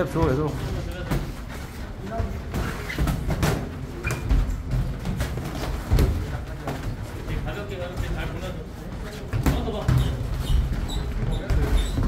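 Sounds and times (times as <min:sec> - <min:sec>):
footwork on ring mat: 0:00.0 - 0:12.0.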